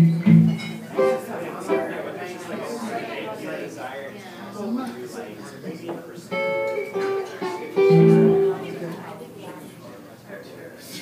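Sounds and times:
amplified guitar notes: 0:00.0 - 0:02.0, 0:06.3 - 0:09.0
chatter: 0:00.4 - 0:11.0.

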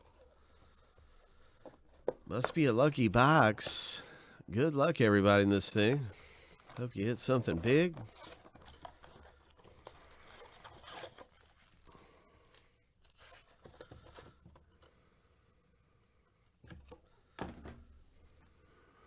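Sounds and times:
foil packs rustling: 0:05.6 - 0:14.0.

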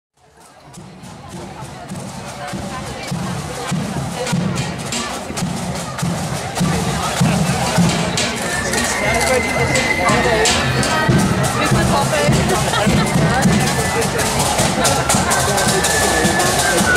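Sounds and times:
crowd chatter: 0:00.2 - 0:16.9.

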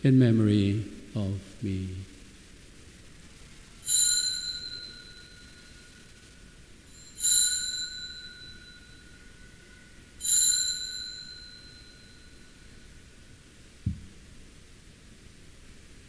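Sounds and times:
altar bell ringing: 0:03.8 - 0:06.2, 0:06.8 - 0:12.9.

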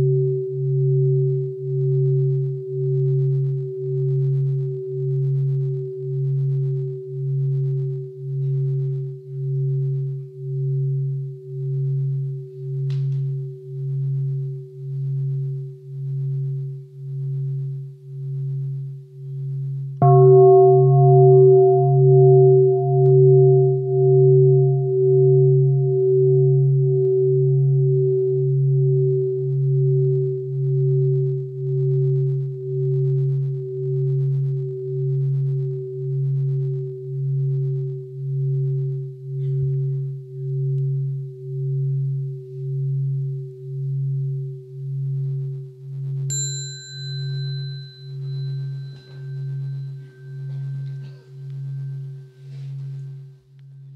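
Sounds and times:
large bowl bell humming: 0:00.0 - 0:53.9
higher-pitched bell tone: 0:20.0 - 0:26.9, 0:46.3 - 0:53.9.

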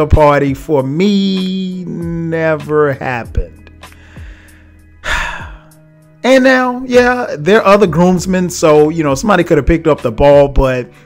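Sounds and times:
low background music: 0:00.0 - 0:11.0
man's quick intake of breath: 0:03.9 - 0:05.8.

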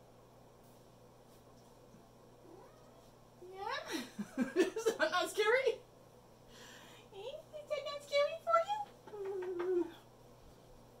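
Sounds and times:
cat meowing: 0:02.4 - 0:03.1.

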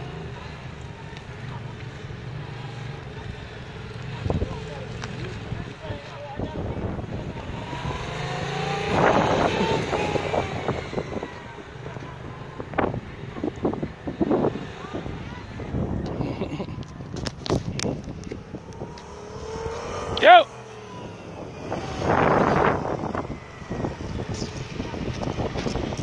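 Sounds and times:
motorcycle engine passing by: 0:00.0 - 0:26.0.

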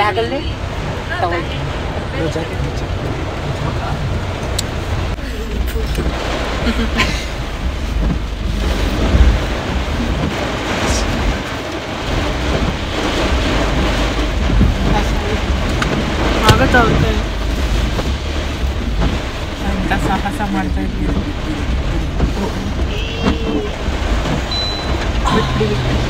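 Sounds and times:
deep rumble: 0:00.0 - 0:26.0
heavy rain on car roof: 0:00.0 - 0:26.0
wind: 0:00.0 - 0:26.0.

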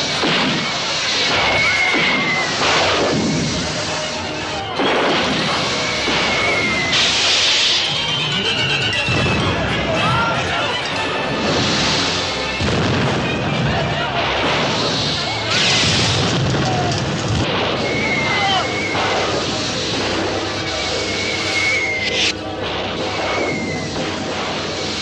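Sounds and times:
pyrotechnic booms and hissing: 0:00.0 - 0:10.6, 0:11.2 - 0:25.0
music: 0:00.0 - 0:25.0
voices: 0:00.0 - 0:25.0.

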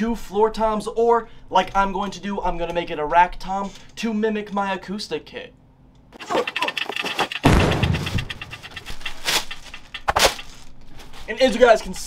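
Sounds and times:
crinkling plastic and cardboard: 0:06.2 - 0:12.0
dull thud: 0:07.4 - 0:09.5.

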